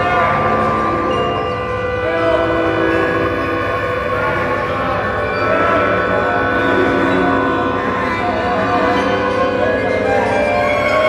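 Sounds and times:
chamber ensemble playing chord: 0.0 - 11.0.

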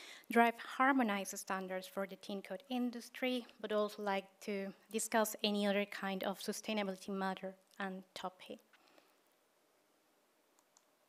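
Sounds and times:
faint clicks: 10.5 - 11.0.

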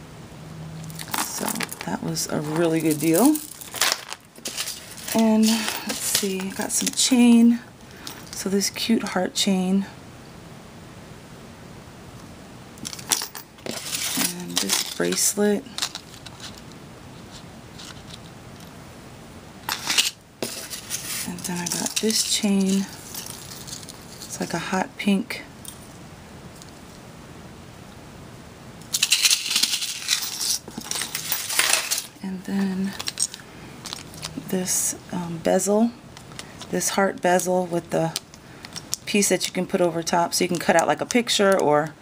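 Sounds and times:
metal chain clinking: 0.9 - 7.1, 8.0 - 8.4, 12.8 - 16.6, 19.7 - 24.5, 28.9 - 32.2.

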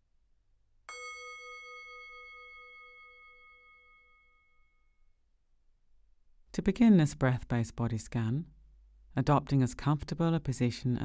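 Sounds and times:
meditation bell ringing: 0.9 - 5.2.

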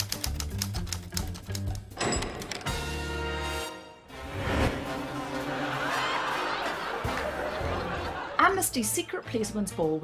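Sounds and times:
theme music with bass line: 0.4 - 10.0.

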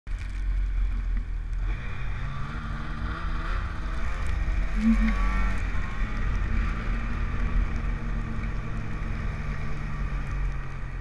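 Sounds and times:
snowmobile engine running: 0.6 - 10.3.

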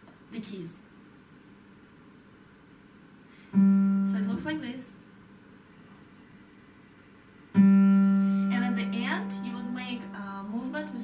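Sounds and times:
loud piano note ringing: 3.5 - 4.8, 7.6 - 11.0.

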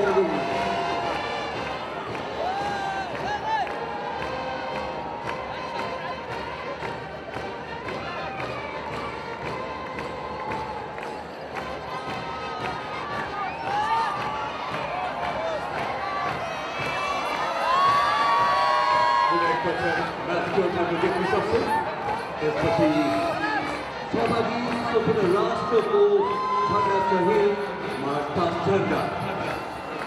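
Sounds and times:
stadium crowd cheering: 0.0 - 30.0.

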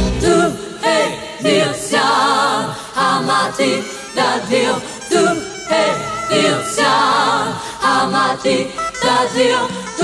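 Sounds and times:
voices singing pop song: 0.0 - 10.0.

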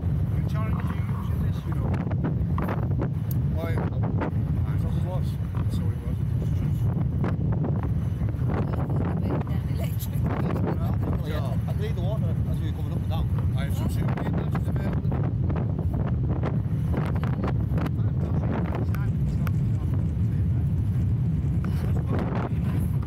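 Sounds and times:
wind buffeting microphone: 0.0 - 23.0
faint voices: 0.3 - 2.0, 16.9 - 23.0.

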